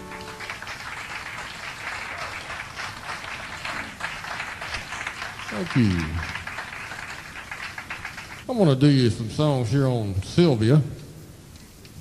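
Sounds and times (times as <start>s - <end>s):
audience applauding: 0.0s - 8.5s.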